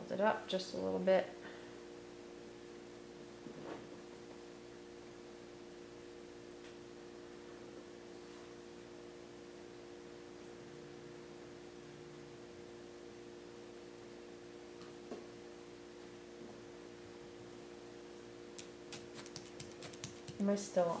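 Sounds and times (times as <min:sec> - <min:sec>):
faint room hum: 0:00.0 - 0:21.0.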